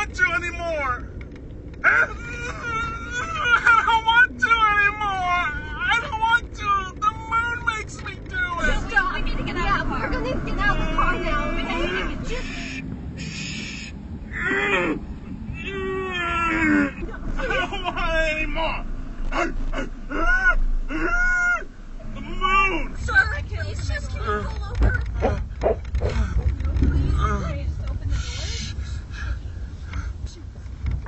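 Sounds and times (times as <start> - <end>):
car interior rumble: 0.0 - 31.0
hiss: 12.4 - 13.9.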